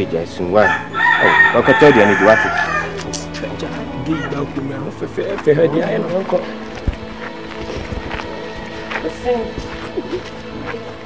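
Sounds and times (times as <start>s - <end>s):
voices: 0.0s - 11.0s
rooster crowing: 0.6s - 3.0s.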